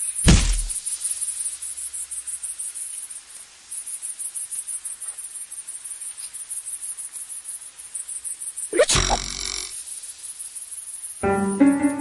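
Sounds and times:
grasshopper stridulating: 0:00.0 - 0:12.0.

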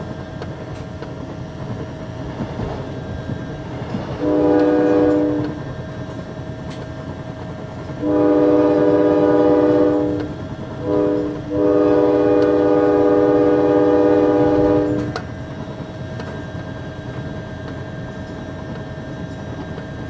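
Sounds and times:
train rumble: 0:00.0 - 0:20.0
train horn blasts: 0:04.2 - 0:05.7, 0:07.9 - 0:15.3.

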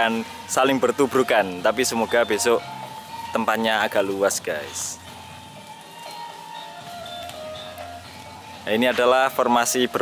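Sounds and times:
distant gamelan music over loudspeaker: 0:00.0 - 0:10.0.

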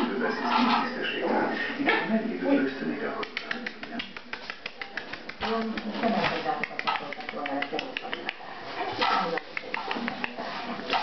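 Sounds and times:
voices in a room: 0:00.0 - 0:11.0
puppy claws clicking on tile: 0:03.2 - 0:11.0.

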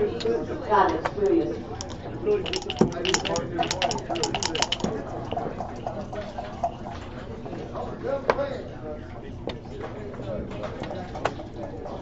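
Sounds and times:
dice rattling and thrown on board: 0:01.2 - 0:04.9.

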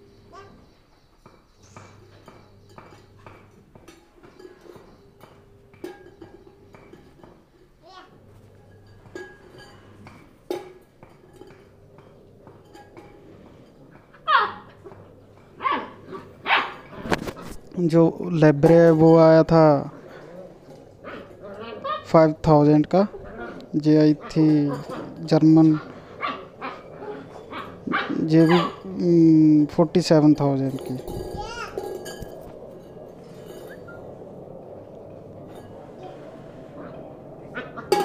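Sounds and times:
puppy yapping: 0:14.1 - 0:14.9, 0:15.6 - 0:17.5, 0:20.1 - 0:22.1, 0:23.1 - 0:28.9.

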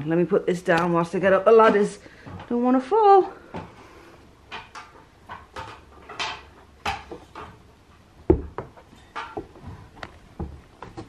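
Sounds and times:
footsteps on ladder rungs: 0:04.5 - 0:11.0.

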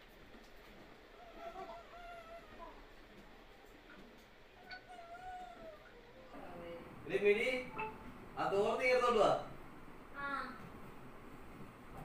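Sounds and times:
high-pitched animal calls: 0:04.6 - 0:06.4.

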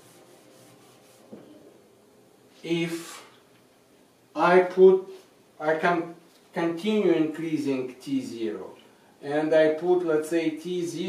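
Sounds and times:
eraser wiping chalkboard: 0:00.0 - 0:01.5.

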